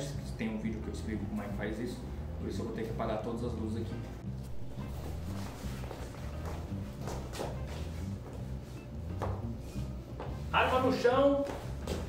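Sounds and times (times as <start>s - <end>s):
background music with bass line: 0.0s - 12.0s
footsteps on a hard floor: 4.4s - 12.0s.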